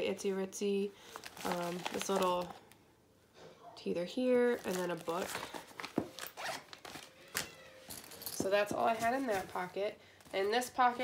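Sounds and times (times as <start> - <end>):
bag zipper pulled: 6.2 - 7.5.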